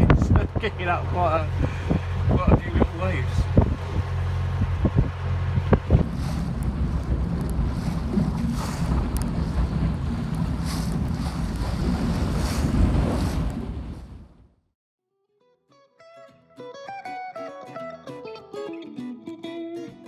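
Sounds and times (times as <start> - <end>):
boat engine running: 0.0 - 14.0
choppy river water: 0.0 - 14.3
wind buffeting microphone: 0.0 - 14.5.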